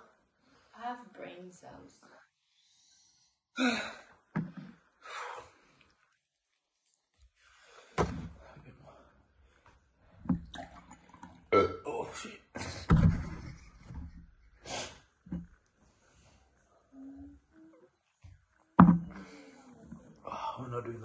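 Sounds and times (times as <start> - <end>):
person gulping milk: 10.3 - 11.9
sharp breaths: 14.6 - 15.2
jug and glass knocking: 18.8 - 19.2.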